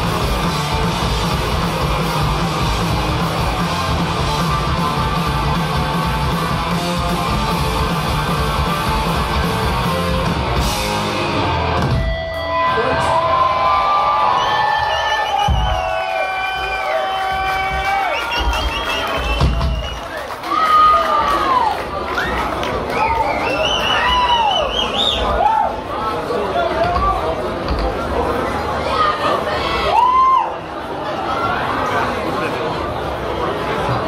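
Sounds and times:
guitar feedback: 0:00.0 - 0:13.4
punk band playing live: 0:00.0 - 0:13.5, 0:18.4 - 0:20.0
crowd cheering: 0:00.0 - 0:27.4, 0:28.2 - 0:31.9.

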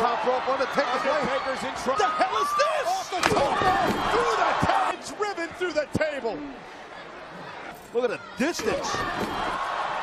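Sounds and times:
arena crowd roaring: 0:00.0 - 0:10.0
body crashing onto table: 0:03.2 - 0:04.2, 0:08.7 - 0:09.6.

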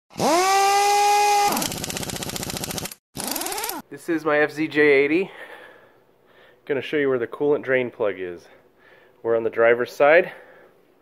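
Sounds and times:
fast mechanical rattle: 0:01.3 - 0:03.8.

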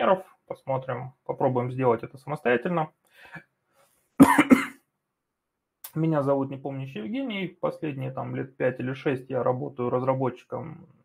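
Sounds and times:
man coughing: 0:04.2 - 0:04.8.

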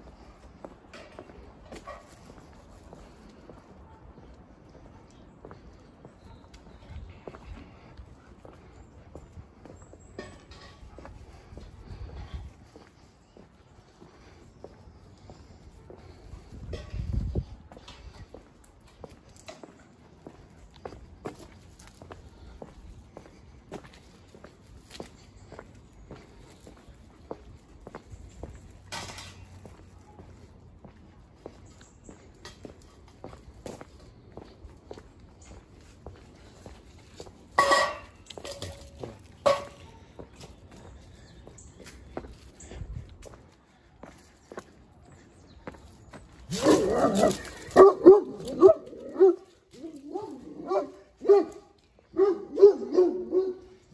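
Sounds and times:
footsteps on pavement: 0:00.0 - 0:53.9
dog barking: 0:46.5 - 0:53.8.

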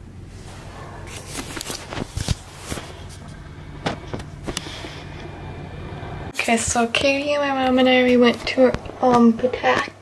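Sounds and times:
car cabin hum: 0:02.0 - 0:06.3.

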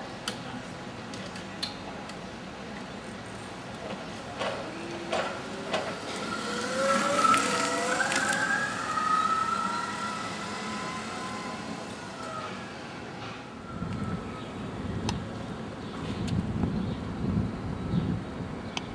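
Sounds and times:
rising pitched whine: 0:04.7 - 0:15.1.

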